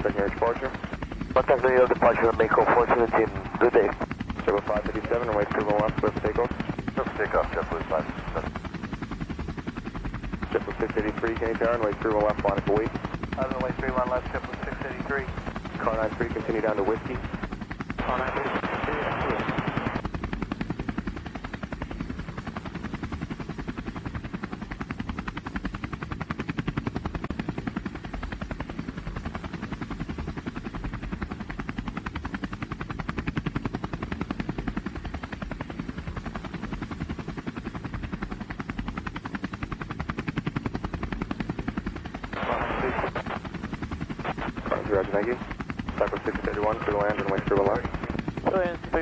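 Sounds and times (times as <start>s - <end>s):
drone propellers buzzing: 0.0s - 49.0s.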